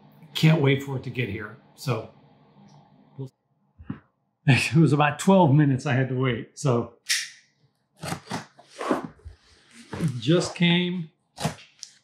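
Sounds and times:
knife slicing packing tape: 8.0s - 9.0s.

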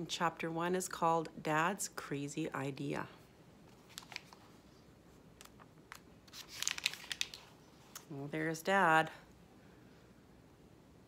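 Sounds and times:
book pages turning: 3.7s - 4.7s, 5.4s - 7.6s.

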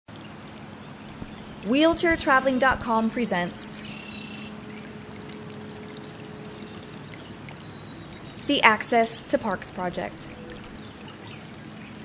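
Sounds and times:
running water rushing: 0.1s - 12.0s.

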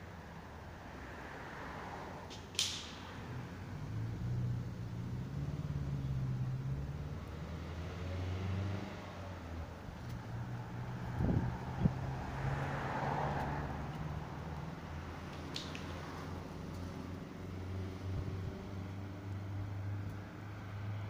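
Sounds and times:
traffic rumble: 0.0s - 21.0s
car passing by: 0.7s - 21.0s.

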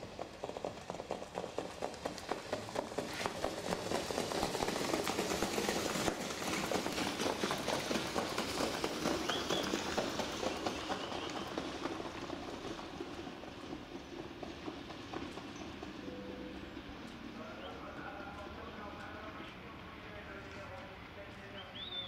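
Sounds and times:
hoofbeats on sand: 0.4s - 5.8s.

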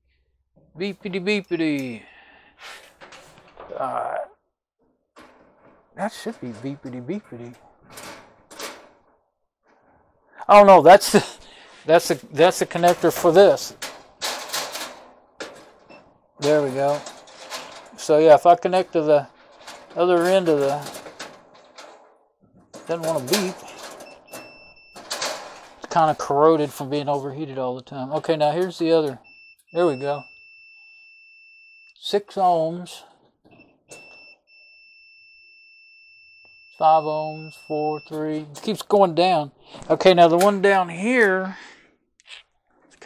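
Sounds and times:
probes rattling against sheet metal: 5.2s - 9.2s, 9.8s - 27.3s
multimeter continuity beeper tone: 34.0s - 38.4s.

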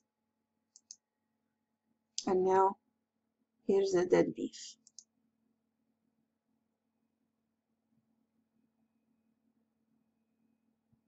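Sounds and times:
computer mouse click: 0.8s - 1.0s, 4.8s - 5.1s.

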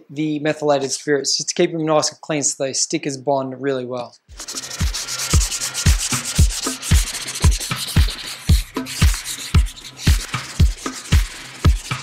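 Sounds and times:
music with kick-drum beat: 4.3s - 12.0s
sandpaper scratching plastic: 4.3s - 12.0s.

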